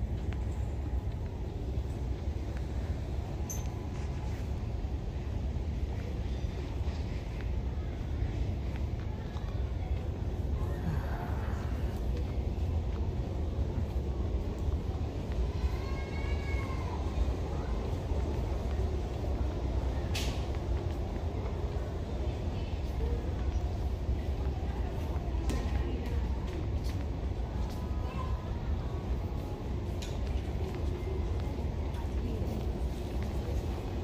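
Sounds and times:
faint distant voice: 5.9s - 12.8s.

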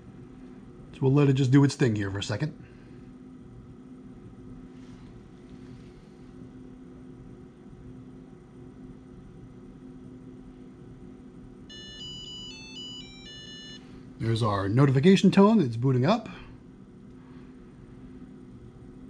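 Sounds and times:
low steady hum: 0.0s - 19.0s
card reader startup beeps: 11.7s - 13.8s.

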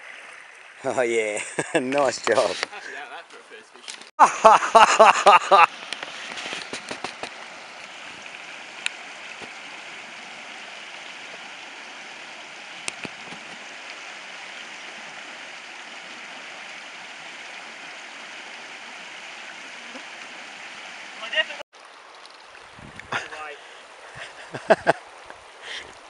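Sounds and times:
creek water running over stones: 0.0s - 26.0s.

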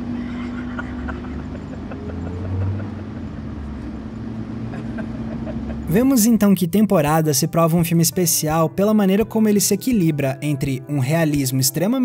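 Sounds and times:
car engine hum: 0.0s - 7.2s
road noise rumble: 0.0s - 9.5s.

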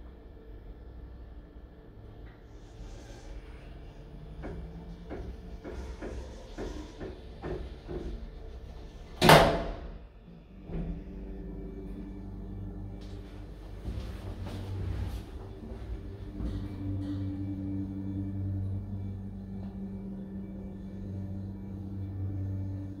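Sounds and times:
lift low hum: 9.9s - 23.0s.

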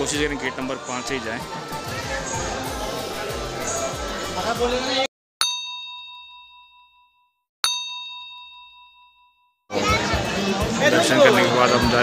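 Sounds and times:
bell ringing: 5.4s - 9.6s.

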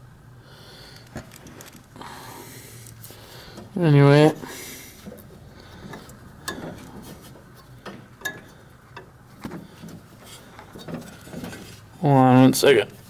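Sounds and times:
low steady hiss: 0.0s - 13.0s.

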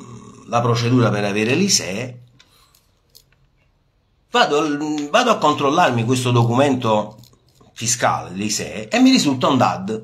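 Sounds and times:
man's voice: 0.0s - 2.2s, 4.3s - 10.0s.

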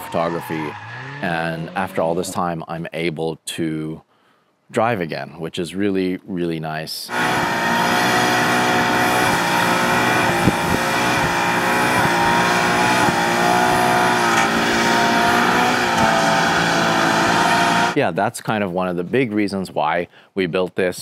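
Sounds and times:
car engine at high revs: 7.1s - 18.0s
tyres spinning: 7.1s - 18.0s.

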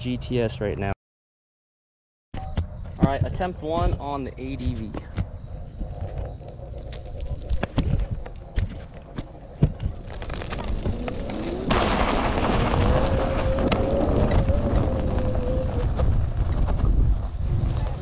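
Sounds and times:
tyre noise on dirt: 2.4s - 18.0s
wind rushing: 10.8s - 18.0s.

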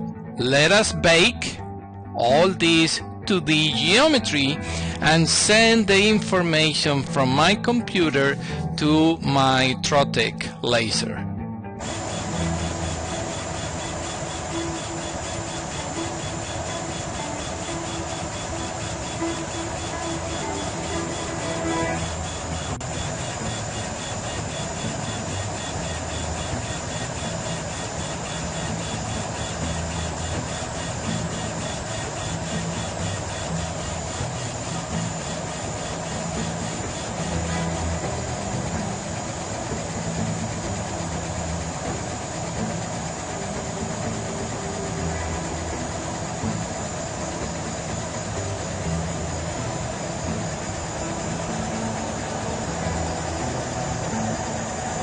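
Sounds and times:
laser cutter fans humming: 0.0s - 1.6s, 2.2s - 11.0s, 11.8s - 55.0s
background music: 0.0s - 55.0s
motors moving: 11.8s - 55.0s.

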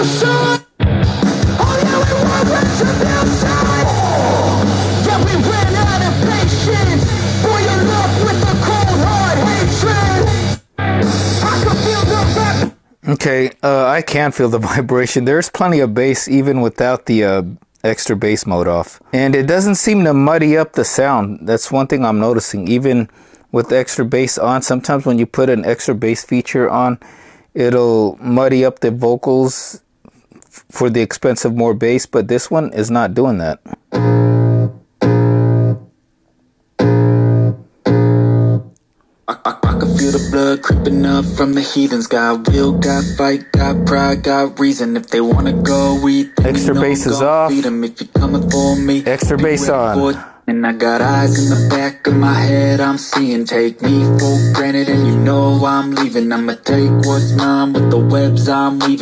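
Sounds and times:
rock song from speaker: 0.0s - 12.8s, 34.0s - 35.8s, 36.8s - 38.6s, 39.6s - 59.0s.

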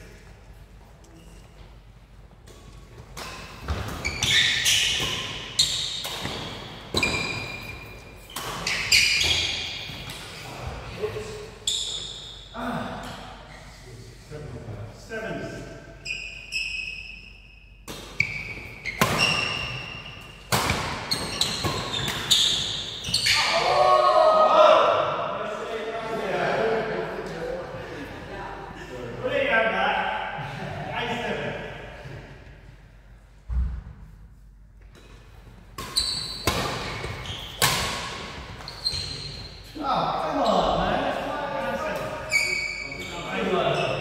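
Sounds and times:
shoes squeaking on court floor: 0.8s - 1.8s, 2.6s - 10.5s, 11.6s - 12.5s, 16.0s - 23.5s, 35.1s - 39.8s, 42.1s - 44.0s
men's voices: 23.6s - 32.3s.

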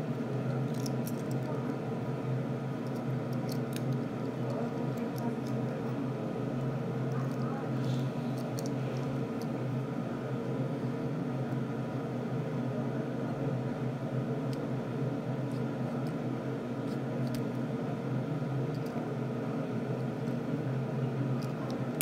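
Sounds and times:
low background hum: 0.0s - 22.0s.

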